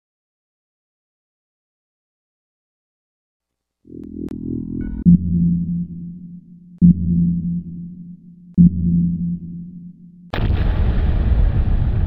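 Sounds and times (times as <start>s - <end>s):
low electronic pulses: 3.9s - 10.7s
loud burst of noise: 10.3s - 12.0s.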